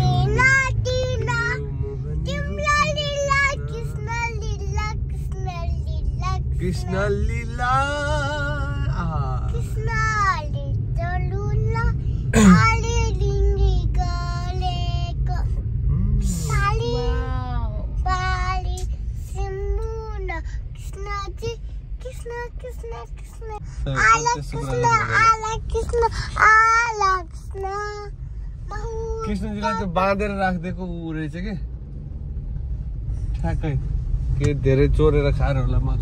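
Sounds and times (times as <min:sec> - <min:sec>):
low rumble of car on road: 0:00.0 - 0:36.0
child singing in high voice: 0:09.6 - 0:15.6, 0:18.0 - 0:28.1.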